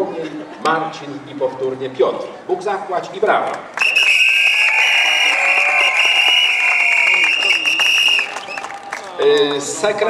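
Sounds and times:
crowd clapping and cheering: 0:03.6 - 0:09.8
shrill whistle-like tone: 0:03.8 - 0:08.7.

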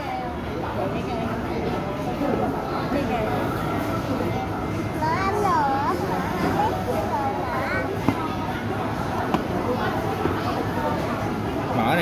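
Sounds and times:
background voices and chatter: 0:00.0 - 0:12.0.

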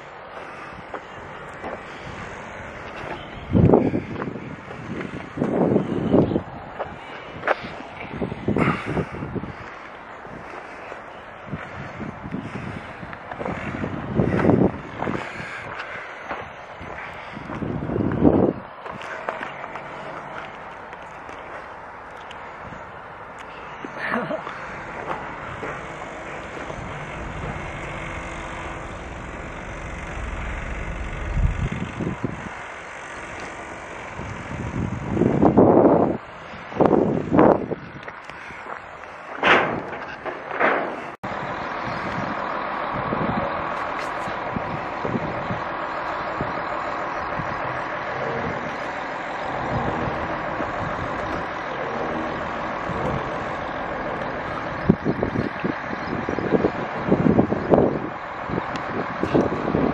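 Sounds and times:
vehicle rumbling: 0:00.0 - 0:59.9
wind on microphone: 0:01.8 - 0:10.6, 0:11.4 - 0:15.8, 0:16.8 - 0:19.2, 0:24.8 - 0:39.0, 0:41.2 - 0:59.9.

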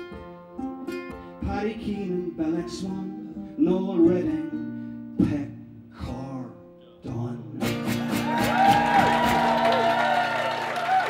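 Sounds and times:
strummed acoustic guitar chords: 0:00.0 - 0:08.4
person singing: 0:01.1 - 0:07.8
audience applauding and cheering: 0:08.0 - 0:11.0.

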